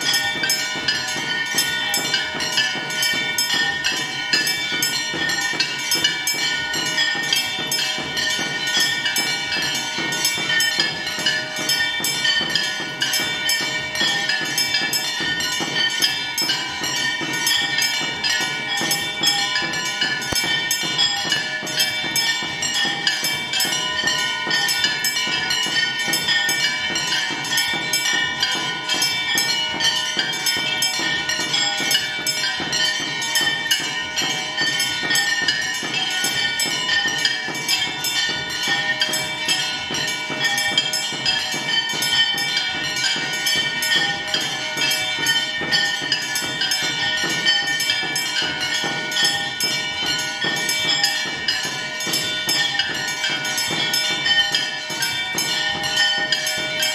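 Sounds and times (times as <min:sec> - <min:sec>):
percussion: 0:00.0 - 0:56.9
temple bells ringing fast: 0:00.0 - 0:56.9.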